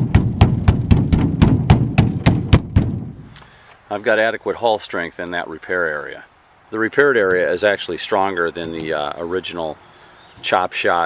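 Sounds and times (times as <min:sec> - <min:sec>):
brush tapping on fiberglass: 0:00.0 - 0:03.5.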